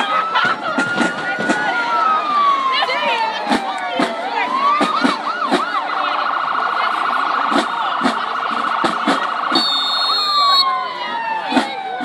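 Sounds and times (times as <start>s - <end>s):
marching band sliding tones: 0.0s - 12.0s.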